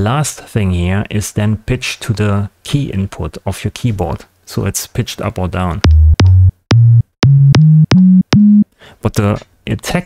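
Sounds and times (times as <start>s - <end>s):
synthesized kick drum notes: 5.8s - 8.7s.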